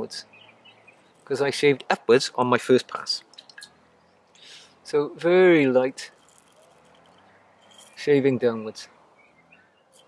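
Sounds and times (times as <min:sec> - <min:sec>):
razor scraping stubble: 0:06.1 - 0:08.0.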